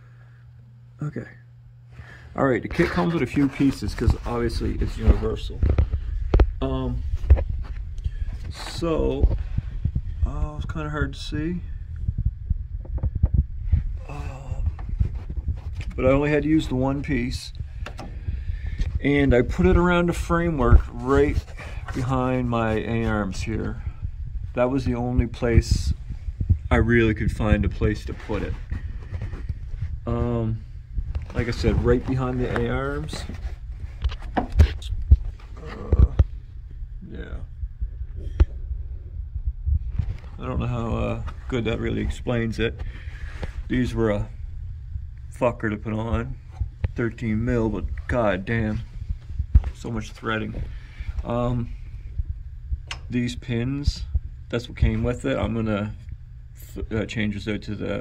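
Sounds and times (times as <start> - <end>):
camera handling rumble and bumps: 2.7 - 10.3, 11.9 - 23.8, 24.8 - 30.2, 30.9 - 36.8, 39.7 - 43.8, 46.1 - 51.3
wind on microphone: 4.0 - 21.9, 22.8 - 32.6, 33.3 - 41.5
small knocks and bumps: 31.1 - 36.3.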